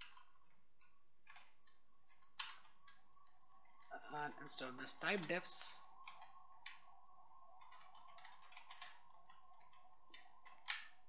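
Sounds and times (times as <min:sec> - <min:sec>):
computer keyboard keystrokes: 0:00.0 - 0:03.0, 0:06.0 - 0:06.8, 0:07.6 - 0:11.0
faint steady hum: 0:00.0 - 0:11.0.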